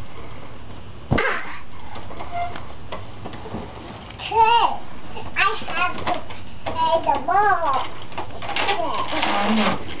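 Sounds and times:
young child vocalizing: 0:01.1 - 0:01.7.

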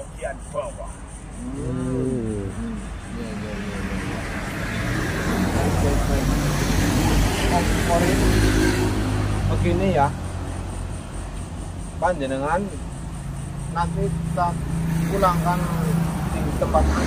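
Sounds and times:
vehicle passing on road: 0:01.1 - 0:17.0
vocal groan: 0:01.4 - 0:04.4.

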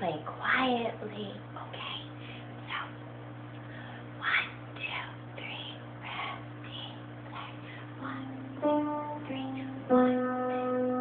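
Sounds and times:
low electrical hum: 0:00.0 - 0:11.0
woman whispering: 0:01.6 - 0:03.0, 0:04.2 - 0:08.3.

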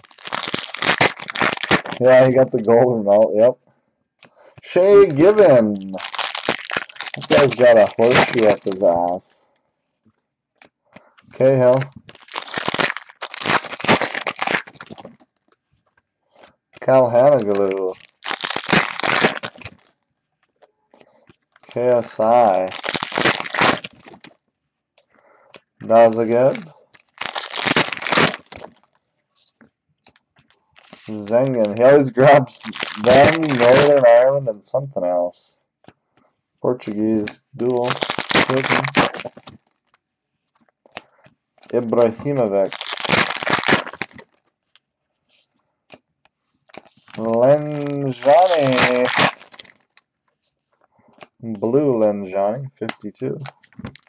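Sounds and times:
foil card pack tearing: 0:00.0 - 0:02.3, 0:04.7 - 0:09.0, 0:11.4 - 0:15.2, 0:16.9 - 0:19.9, 0:21.6 - 0:24.3, 0:25.9 - 0:28.9, 0:30.8 - 0:34.2, 0:37.6 - 0:39.8, 0:41.7 - 0:44.4, 0:46.8 - 0:50.0
foil pack crinkling: 0:00.0 - 0:02.4, 0:04.6 - 0:09.2, 0:11.2 - 0:15.6, 0:16.7 - 0:20.0, 0:21.1 - 0:24.4, 0:25.8 - 0:34.4, 0:36.8 - 0:44.9, 0:46.6 - 0:50.1, 0:53.4 - 0:54.0
person speaking: 0:01.7 - 0:03.6, 0:04.4 - 0:09.5, 0:11.1 - 0:12.0, 0:16.8 - 0:18.1, 0:21.6 - 0:23.8, 0:25.8 - 0:26.8, 0:30.8 - 0:35.6, 0:36.6 - 0:39.4, 0:41.6 - 0:42.9, 0:47.1 - 0:49.4, 0:51.4 - 0:53.6.

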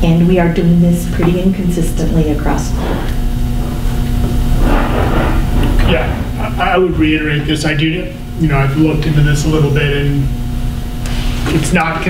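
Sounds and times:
steady low rumble: 0:00.0 - 0:11.0
faint constant hum: 0:00.0 - 0:12.0.

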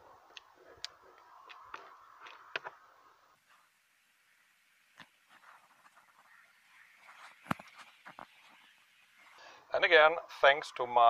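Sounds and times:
faint plastic scratching: 0:05.0 - 0:09.4.

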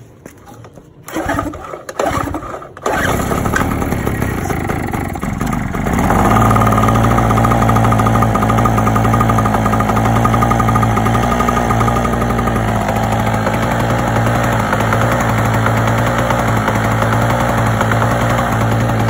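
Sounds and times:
generator engine running: 0:00.4 - 0:19.0.

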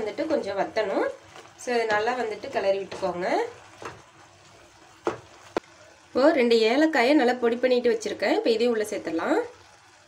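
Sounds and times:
woman speaking: 0:00.0 - 0:03.6.

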